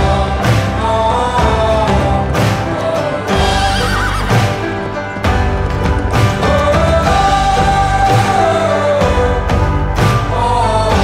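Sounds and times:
background music: 0:00.0 - 0:11.0
horse whinnying: 0:03.4 - 0:04.7.

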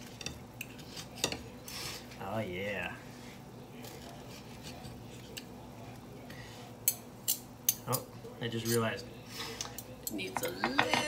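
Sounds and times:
cutlery clinking on ceramic plate: 0:09.7 - 0:11.0.

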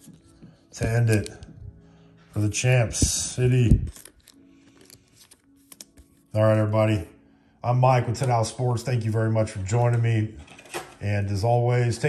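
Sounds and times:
plastic sleeve rustling: 0:02.9 - 0:06.3.

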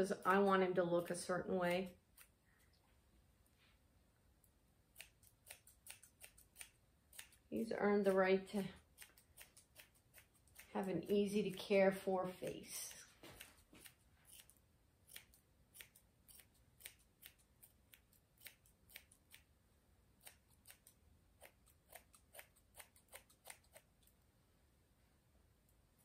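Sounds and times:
scissors snipping hair: 0:01.6 - 0:02.4, 0:04.9 - 0:11.6, 0:12.4 - 0:19.5, 0:20.2 - 0:24.1.

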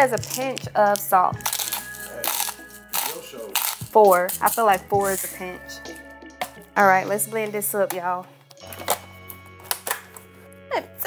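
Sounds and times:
salt grinder grinding crystals: 0:00.0 - 0:05.3.

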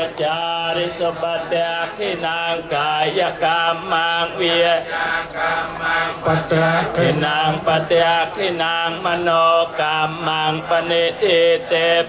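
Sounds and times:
monks chanting in unison: 0:00.0 - 0:12.0.

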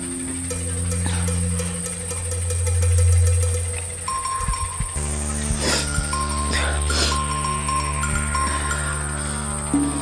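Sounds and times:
low synthesizer drone: 0:00.0 - 0:10.0
sustained chord with high ringing: 0:00.0 - 0:10.0
bell-like shimmer: 0:04.1 - 0:10.0.

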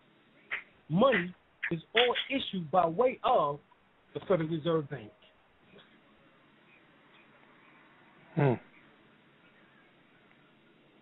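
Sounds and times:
person saying hmm: 0:08.3 - 0:08.6.

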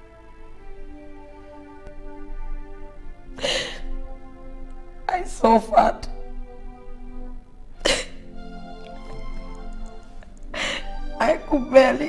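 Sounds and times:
soft film score: 0:00.0 - 0:12.0
woman sobbing: 0:03.4 - 0:03.9, 0:07.8 - 0:08.2, 0:10.6 - 0:10.9.

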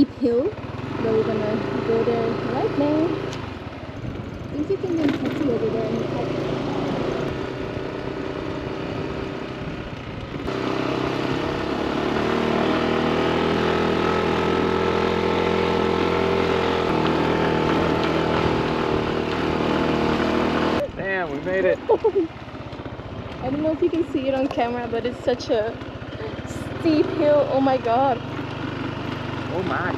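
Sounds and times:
motorbike engine straining uphill: 0:00.0 - 0:29.9.

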